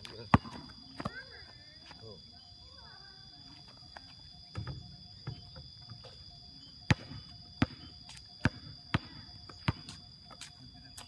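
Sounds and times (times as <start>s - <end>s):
basketball bouncing on concrete: 0.3s - 1.3s, 6.9s - 10.0s.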